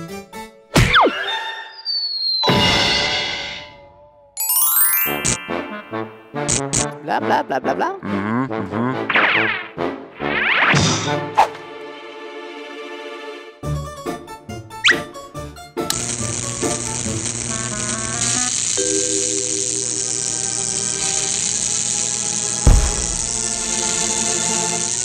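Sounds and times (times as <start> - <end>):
cartoon background music: 0.1 - 12.8, 13.6 - 15.9
rising whistle glide: 1.4 - 2.9
steady high hiss: 15.9 - 25.0
sharp bang: 22.7 - 23.3.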